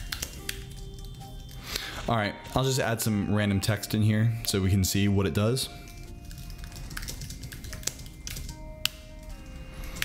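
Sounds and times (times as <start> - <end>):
keyboard keys clicking: 0.0 - 1.6, 5.8 - 10.0
quiet background music: 0.0 - 10.0.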